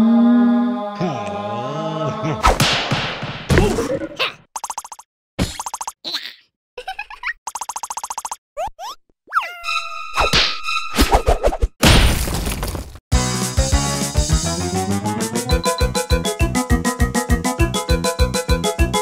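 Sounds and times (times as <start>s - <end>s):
cartoon vocal noises: 0.0s - 2.6s.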